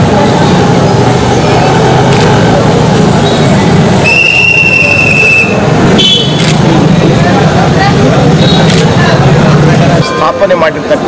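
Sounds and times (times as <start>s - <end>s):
loud street traffic: 0.0s - 11.0s.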